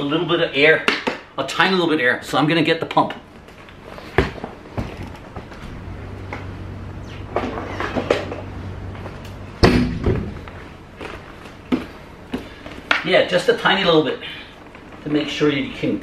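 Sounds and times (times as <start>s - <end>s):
loud thud: 9.6s - 10.5s.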